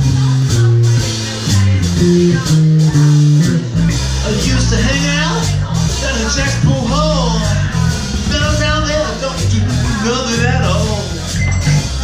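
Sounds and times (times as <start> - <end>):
drums: 0.0 - 12.0
electric bass line: 0.0 - 12.0
guitar: 0.0 - 12.0.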